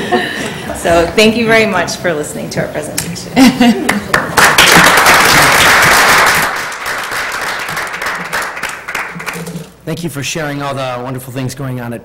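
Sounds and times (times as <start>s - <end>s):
audience applause: 4.1s - 9.8s.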